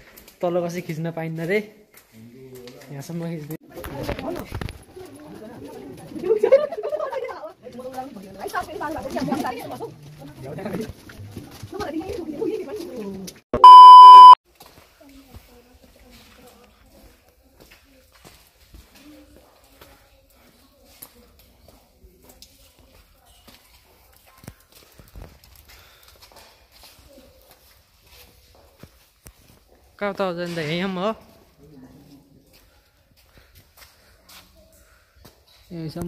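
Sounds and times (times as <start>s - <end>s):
footsteps on paved path: 0.0s - 13.4s, 14.5s - 30.0s, 32.2s - 35.7s
people chattering: 3.6s - 10.9s.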